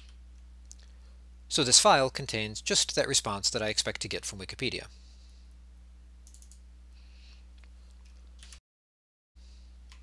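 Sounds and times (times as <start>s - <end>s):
steady low hum: 0.0s - 8.5s
computer mouse clicks: 6.2s - 6.6s.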